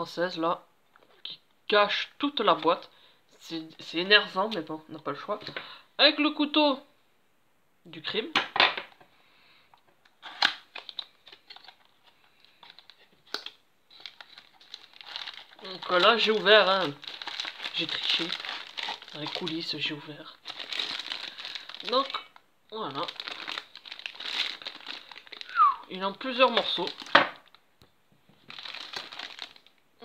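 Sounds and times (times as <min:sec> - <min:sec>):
plastic bags crinkling: 0:10.2 - 0:27.6, 0:28.3 - 0:29.8.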